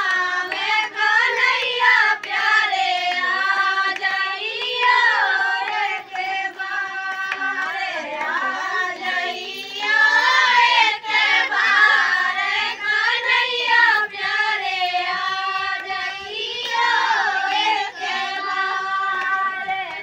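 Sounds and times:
women and girls singing together: 0.0 - 20.0.

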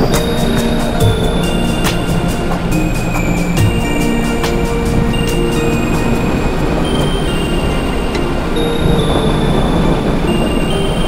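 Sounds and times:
music of long held tones: 0.0 - 11.0
steady low rumble: 0.0 - 11.0.

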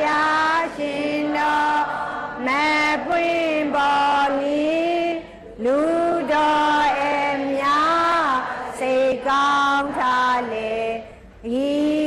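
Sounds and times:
person singing devotional chant: 0.0 - 12.0.

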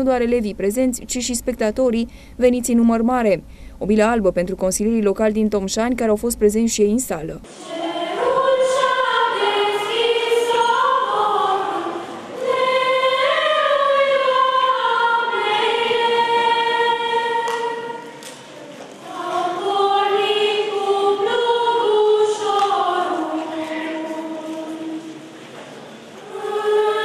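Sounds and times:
girls' choir singing a carol: 7.5 - 27.0.

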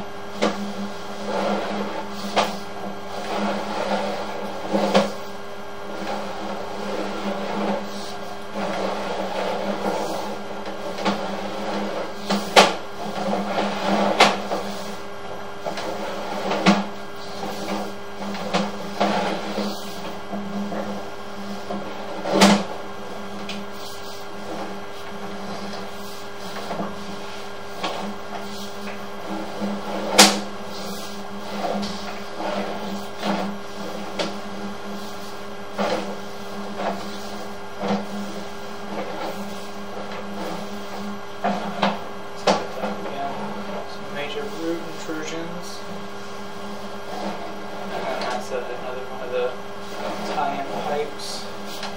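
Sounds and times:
steady low hum: 0.0 - 51.9.

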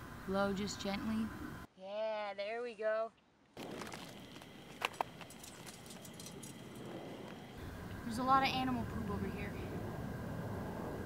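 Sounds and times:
faint outdoor ambience: 0.0 - 11.0
scuffing on gravelly ground: 3.6 - 7.4.

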